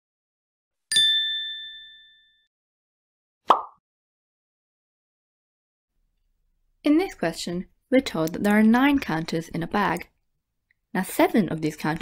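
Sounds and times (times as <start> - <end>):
bright ding: 0.9 - 2.5.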